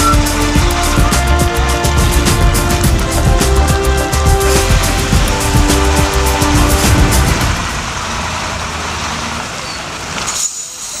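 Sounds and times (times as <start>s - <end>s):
diesel truck engine running: 0.0s - 10.2s.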